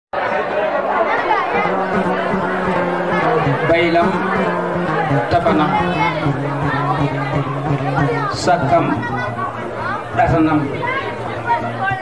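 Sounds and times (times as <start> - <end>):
chatter of voices: 0.2 - 12.0.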